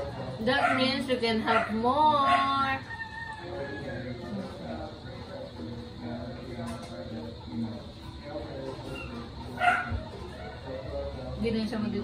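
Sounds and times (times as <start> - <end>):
dog barking: 0.5 - 2.7, 9.6 - 10.7.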